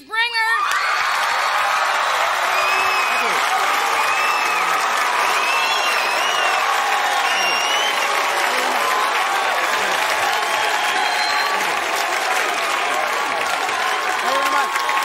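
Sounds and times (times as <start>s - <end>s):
audience applauding: 0.6s - 15.0s
whoops and whistles: 4.0s - 8.2s, 10.8s - 11.7s.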